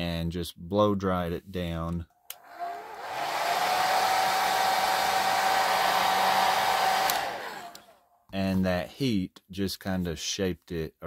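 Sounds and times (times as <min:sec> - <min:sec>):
hair dryer whining: 0:02.4 - 0:08.0
hair dryer switch click: 0:06.6 - 0:07.9.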